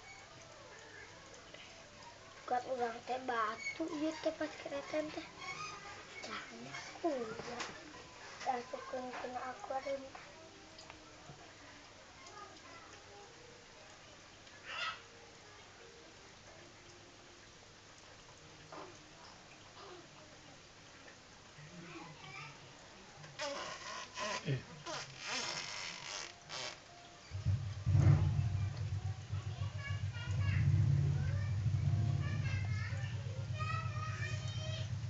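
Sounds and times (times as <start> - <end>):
low steady background noise: 0.0 - 35.0
low fluttering rumble: 27.3 - 35.0.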